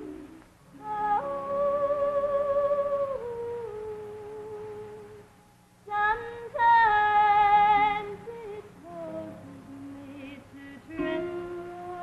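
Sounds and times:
women humming gospel harmony: 0.0s - 5.0s.

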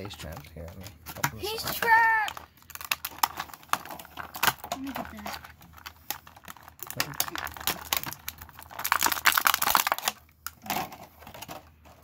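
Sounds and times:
plastic bag crinkling: 0.2s - 12.0s.

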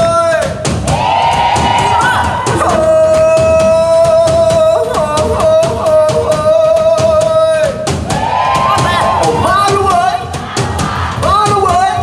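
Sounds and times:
drum kit beat: 0.0s - 12.0s
live band music: 0.0s - 12.0s
man singing: 2.5s - 7.8s, 11.2s - 12.0s.

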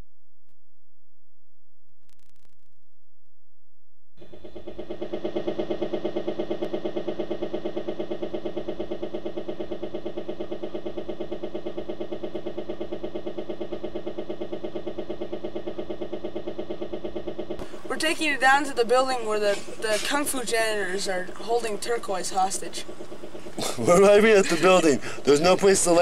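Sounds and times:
helicopter rotor droning: 4.2s - 26.0s.

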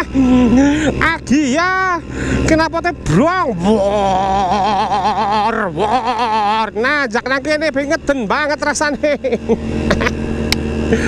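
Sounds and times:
two-stroke scooter engine cruising: 0.0s - 11.0s.

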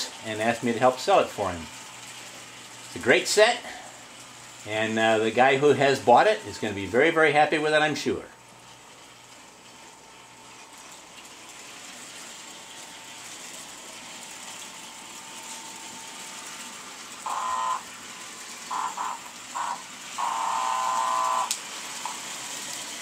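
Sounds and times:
toy train whirring on track: 16.4s - 23.0s
toy train horn blasts: 17.2s - 17.9s, 18.7s - 21.6s.

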